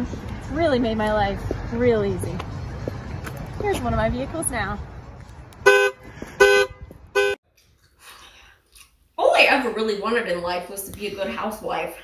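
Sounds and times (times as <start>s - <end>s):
car horn honks: 5.6s - 7.4s.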